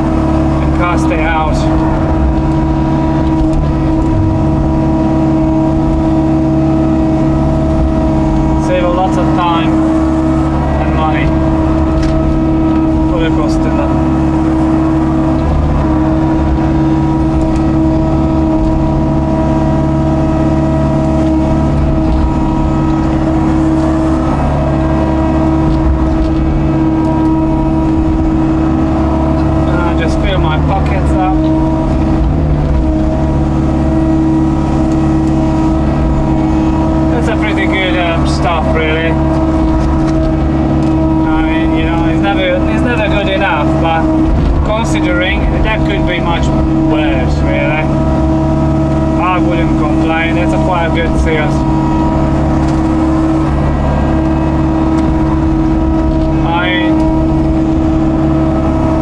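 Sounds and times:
excavator engine droning: 0.0s - 59.0s
hydraulic whine: 0.0s - 59.0s.

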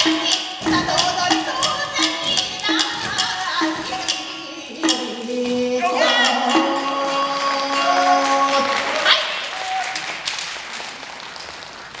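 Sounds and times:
audience applause: 6.5s - 12.0s.

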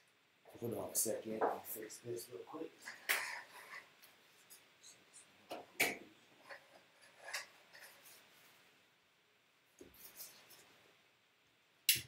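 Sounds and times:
rustling: 9.7s - 10.8s.

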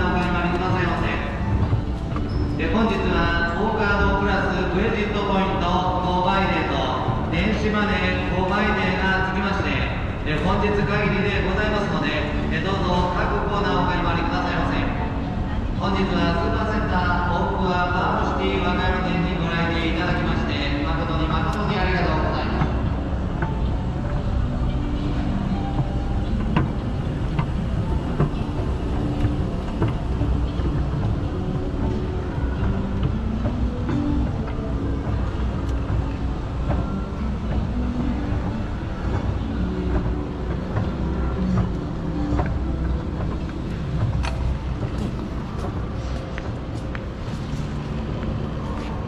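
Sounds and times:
moving walkway rumbling: 0.0s - 49.0s.

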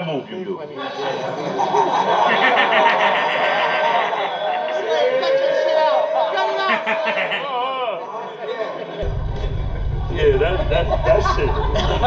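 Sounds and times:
crowd chatter: 0.0s - 12.0s
men talking: 0.0s - 12.0s
steady low rumble: 9.0s - 12.0s.

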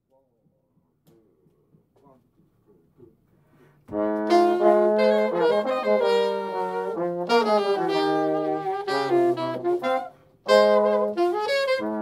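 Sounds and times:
alto saxophone: 3.9s - 12.0s
jazz band playing: 3.9s - 12.0s
trombone: 3.9s - 12.0s.

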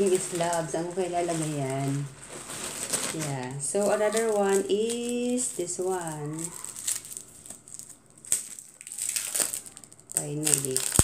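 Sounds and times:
packaging crumpled and torn: 0.0s - 11.0s.

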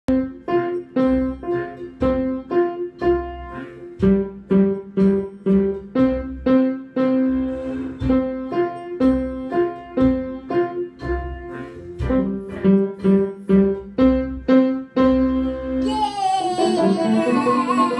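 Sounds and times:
piano two-note chords: 0.1s - 17.9s.

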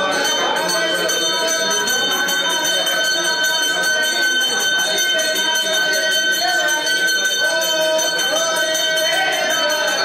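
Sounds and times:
people's voices: 0.0s - 10.0s
temple bells ringing: 0.0s - 10.0s.

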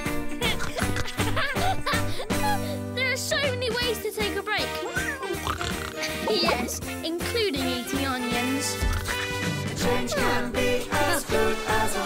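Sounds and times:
background music: 0.0s - 12.0s
cartoon pig oinking: 4.8s - 6.8s, 8.8s - 9.4s.

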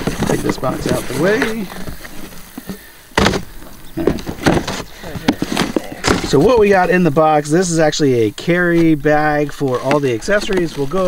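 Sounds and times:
boxes bumping and rustling: 0.0s - 7.3s, 8.6s - 11.0s.

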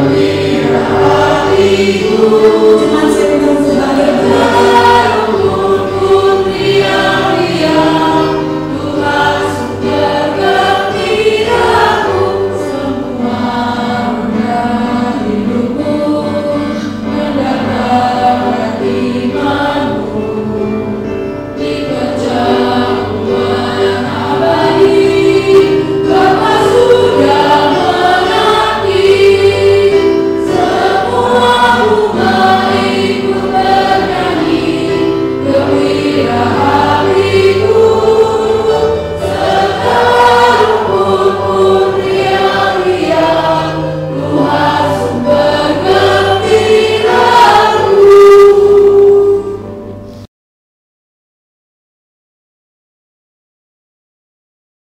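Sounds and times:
women singing worship song: 0.0s - 49.6s.

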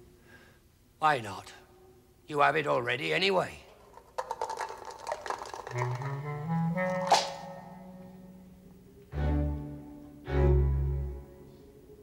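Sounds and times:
dice rattling and clattering: 3.7s - 7.4s
music with low held notes: 6.0s - 12.0s.

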